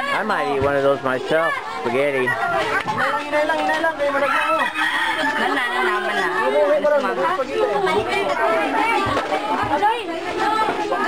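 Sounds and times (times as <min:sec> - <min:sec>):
children chattering and laughing: 0:00.0 - 0:11.0.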